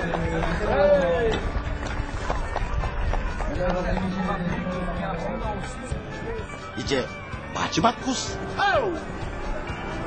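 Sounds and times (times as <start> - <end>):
people talking indistinctly: 0.0 - 10.0.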